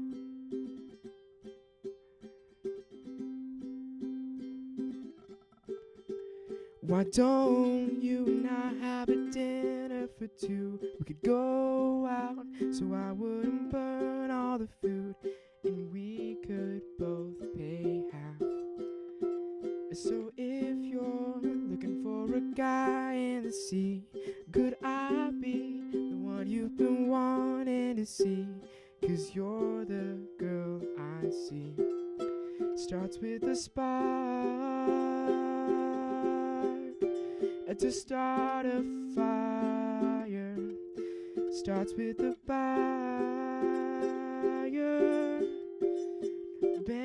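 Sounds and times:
ukulele strumming: 0:00.0 - 0:47.0.

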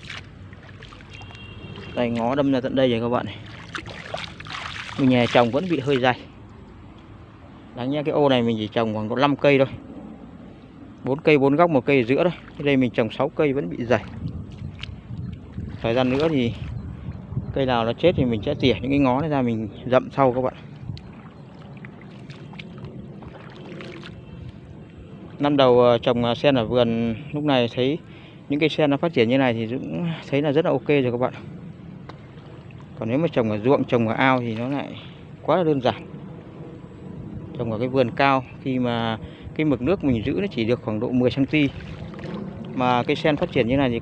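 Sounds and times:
hand splashing shallow water: 0:00.0 - 0:06.2, 0:15.6 - 0:16.7, 0:20.3 - 0:24.6, 0:41.4 - 0:43.7.

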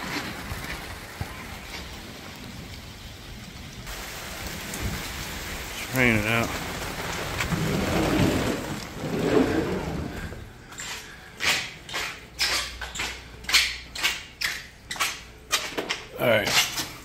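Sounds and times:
rain hissing: 0:00.0 - 0:13.9.

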